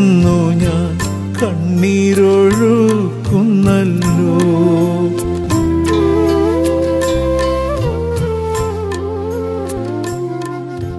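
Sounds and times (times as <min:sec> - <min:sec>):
person singing slow melody: 0:00.0 - 0:09.4.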